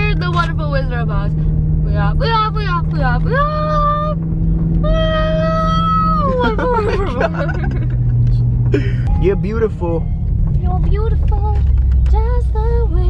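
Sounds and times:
car cabin hum: 0.0s - 13.0s.

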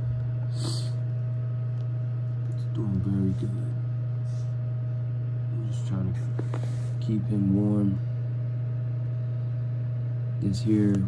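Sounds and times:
space heater humming: 0.0s - 11.0s.

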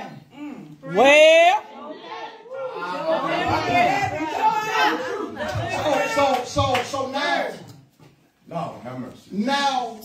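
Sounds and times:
overlapping voices talking: 0.9s - 7.8s.

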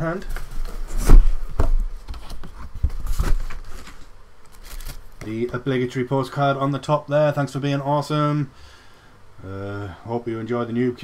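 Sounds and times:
cardboard and paper rustling and tearing: 0.2s - 5.2s.

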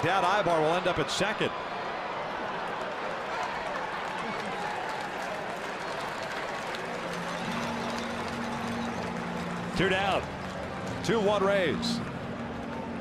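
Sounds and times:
scattered clapping: 2.8s - 13.0s.

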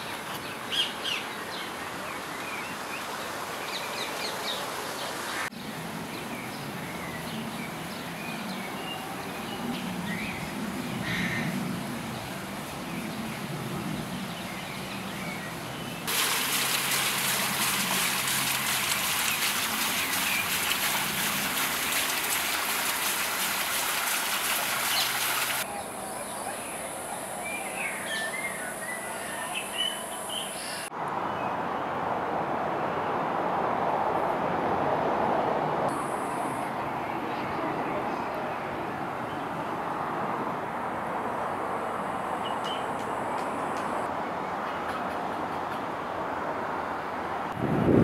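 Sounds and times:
high steady hiss: 7.5s - 30.9s, 35.9s - 36.9s
running water: 16.0s - 25.7s
birds chirping: 17.2s - 31.5s.

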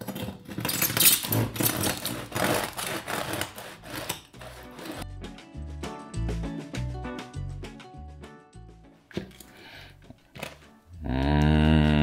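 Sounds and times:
knife sawing through bread crust: 1.2s - 5.0s
background music with bass line: 5.0s - 12.0s.

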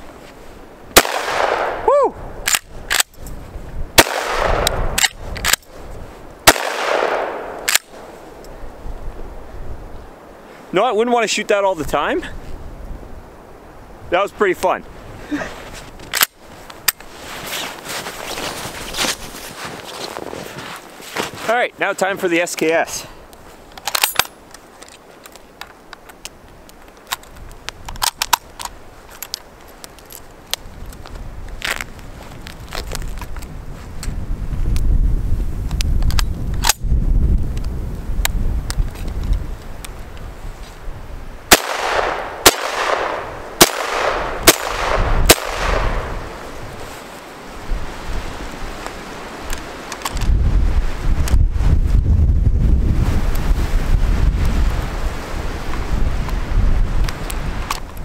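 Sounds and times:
rifle shots with echo: 1.0s - 1.8s, 4.0s - 5.1s, 6.4s - 8.0s, 41.5s - 46.4s
metallic clicks of rifle handling: 2.4s - 3.4s, 4.2s - 5.7s, 6.6s - 8.6s, 16.0s - 17.1s, 23.7s - 31.8s, 49.5s - 50.3s.

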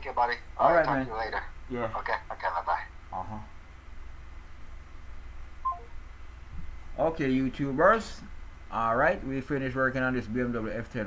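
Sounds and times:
low steady hum: 0.0s - 11.0s
three-note phone beep: 5.6s - 6.0s.

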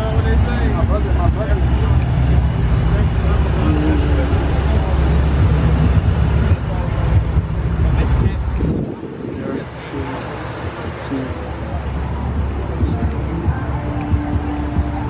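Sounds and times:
car engine idling: 0.0s - 15.0s
people talking in background: 0.0s - 15.0s.

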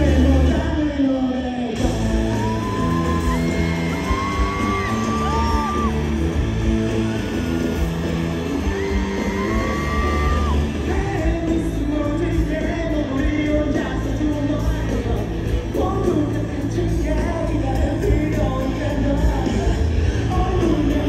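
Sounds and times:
live band music over pa: 0.0s - 21.0s.

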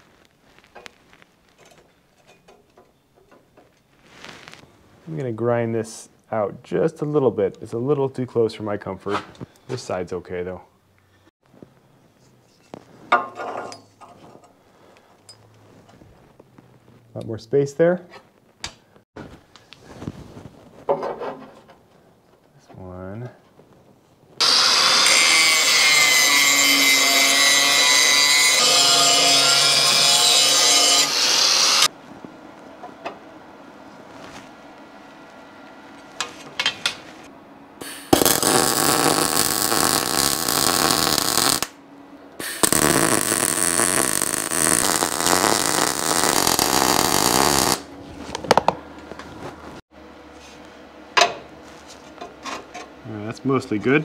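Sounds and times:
crackling welding: 0.0s - 1.8s, 24.4s - 31.9s, 37.8s - 41.8s, 42.4s - 47.9s
angle grinder grinding steel: 24.4s - 31.9s, 42.4s - 47.8s.

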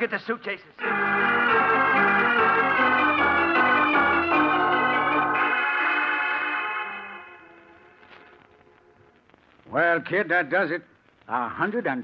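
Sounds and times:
organ playing held chords: 0.8s - 8.2s.

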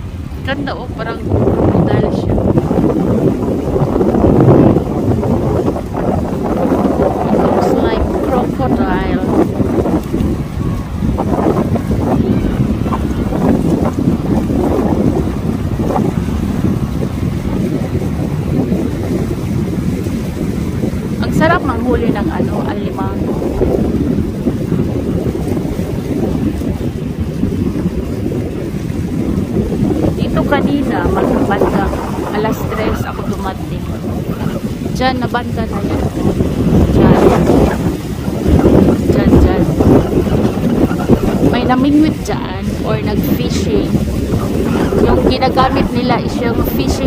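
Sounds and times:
small waves washing on rocks: 0.0s - 47.0s
wind buffeting microphone: 0.0s - 47.0s.

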